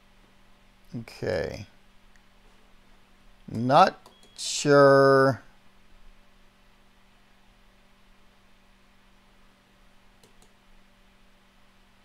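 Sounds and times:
steady low hum: 0:00.0 - 0:12.0
keyboard keystroke clicks: 0:10.2 - 0:10.6.

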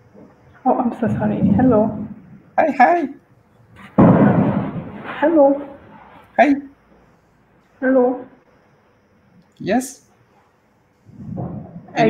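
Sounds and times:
loud microphone noise burst: 0:03.8 - 0:06.0, 0:11.0 - 0:12.0.

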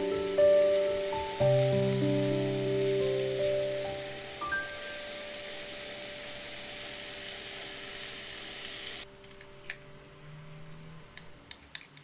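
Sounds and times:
food sizzling in a frying pan: 0:00.0 - 0:09.1.

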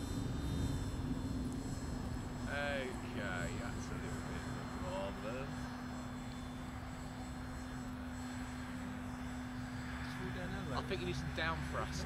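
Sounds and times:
wind rumbling on microphone: 0:00.0 - 0:08.4
model plane motor droning: 0:00.0 - 0:12.0.

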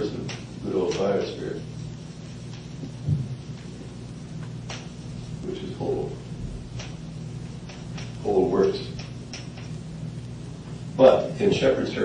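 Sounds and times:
recording hum and hiss: 0:00.0 - 0:12.0
soft low thump: 0:02.8 - 0:03.4.

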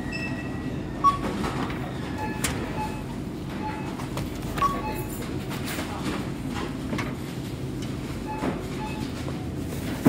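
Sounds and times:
barcode scanner beep: 0:02.2 - 0:05.2
groceries knocking and rustling: 0:04.0 - 0:06.3.

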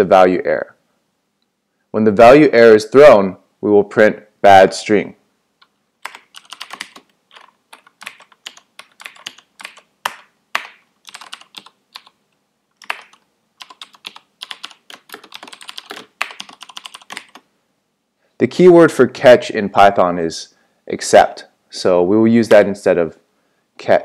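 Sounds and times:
typing on computer keyboard: 0:06.0 - 0:12.2, 0:12.8 - 0:17.4.

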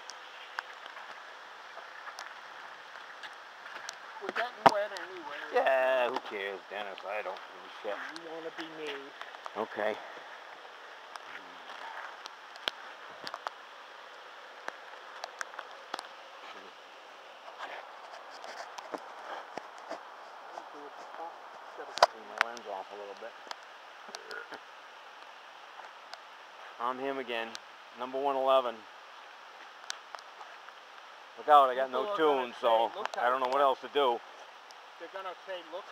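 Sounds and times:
rain falling on woods: 0:00.0 - 0:35.9
camera handling ticks and rustles: 0:08.9 - 0:09.6, 0:17.5 - 0:22.6.

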